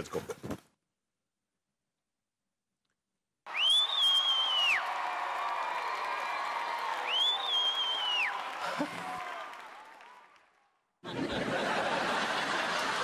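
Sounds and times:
high whistle-like tone: 3.5s - 4.9s, 7.0s - 8.3s.

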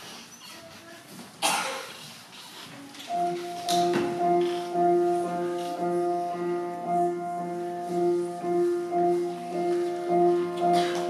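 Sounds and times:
quiet hall noise: 0.0s - 11.0s
loud cough: 1.4s - 1.9s
grand piano four-hands: 3.1s - 11.0s.

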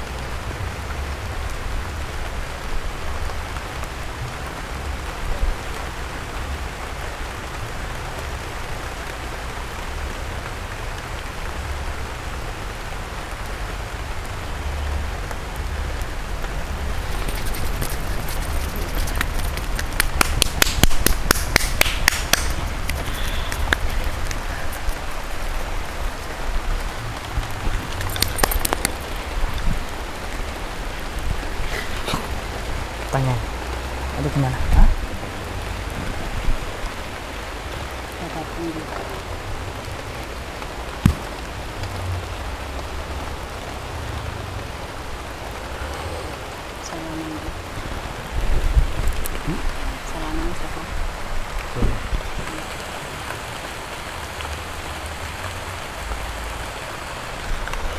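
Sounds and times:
wind rumble on microphone: 0.0s - 38.3s, 38.9s - 57.9s.

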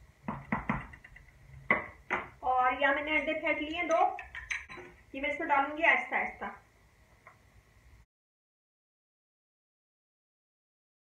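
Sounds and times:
wooden spoon knocking on pot: 0.2s - 1.0s
spoon clacking on ceramic rest: 3.0s - 5.0s.

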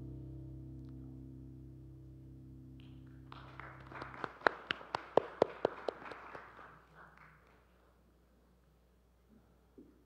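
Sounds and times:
sharp claps: 2.8s - 7.8s
congregation applauding: 3.2s - 7.8s.

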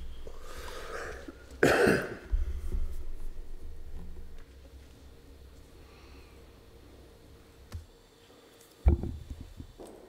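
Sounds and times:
low room hum: 0.0s - 10.0s
person coughing loudly: 1.0s - 2.3s.

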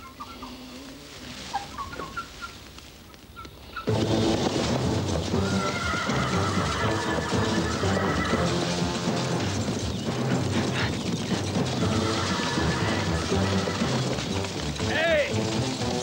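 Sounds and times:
film soundtrack music: 3.9s - 16.0s.

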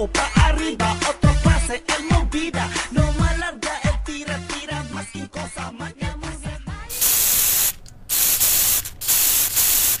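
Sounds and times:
dance music with singing: 0.0s - 6.9s
spray paint can hissing: 6.9s - 10.0s.

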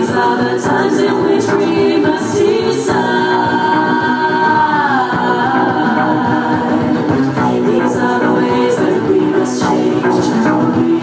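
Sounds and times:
instrumental backing: 0.0s - 11.0s.

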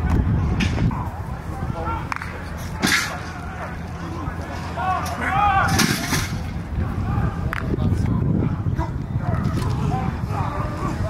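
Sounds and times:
players shouting and yelling: 0.0s - 11.0s
steady low rumble: 0.0s - 11.0s.

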